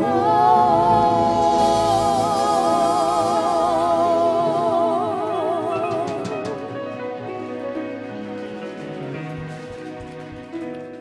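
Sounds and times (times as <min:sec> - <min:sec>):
band holding a chord: 0:00.0 - 0:07.1.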